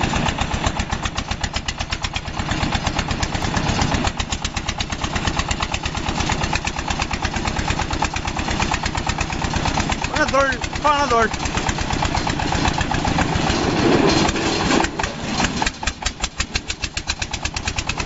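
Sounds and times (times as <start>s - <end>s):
harvester engine running: 0.0s - 18.0s.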